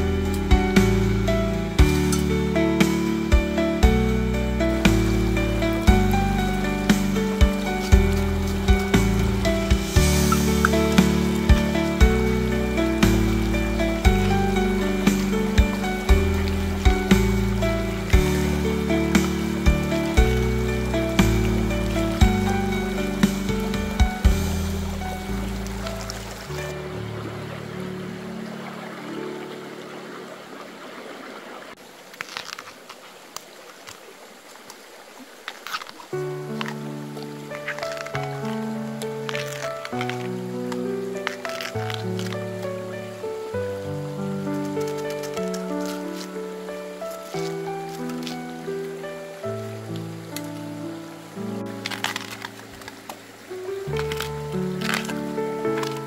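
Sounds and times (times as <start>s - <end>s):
background music with steady beat: 0.0s - 26.8s
shallow stream rushing: 0.0s - 56.0s.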